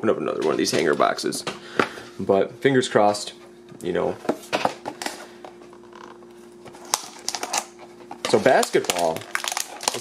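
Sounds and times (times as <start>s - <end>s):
faint steady hum: 0.0s - 10.0s
plastic wrap crinkling: 6.8s - 10.0s.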